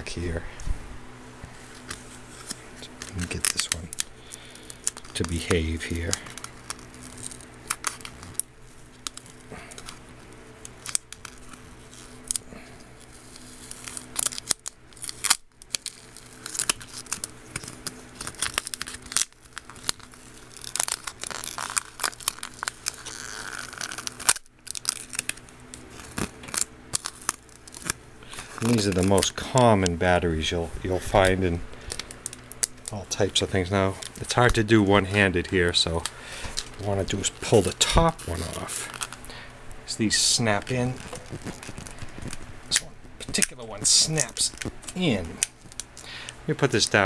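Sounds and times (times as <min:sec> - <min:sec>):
plastic wrap crackling and tearing: 0:01.7 - 0:47.0.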